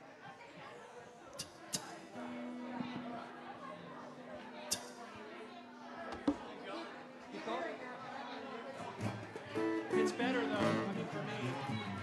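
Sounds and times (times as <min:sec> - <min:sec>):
people talking: 0:00.0 - 0:12.0
plucked acoustic guitar notes: 0:01.4 - 0:07.9, 0:09.0 - 0:11.8.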